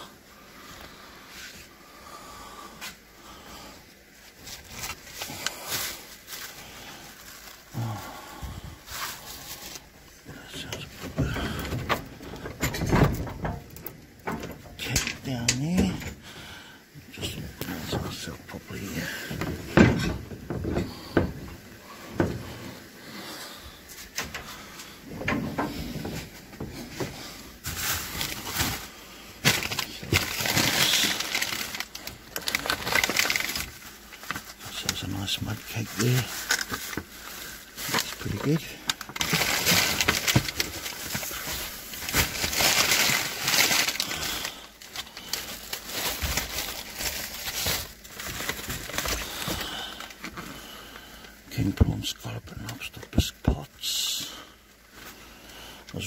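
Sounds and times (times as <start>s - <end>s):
plastic bags rustling and crinkling: 0.0s - 53.6s, 54.2s - 56.0s.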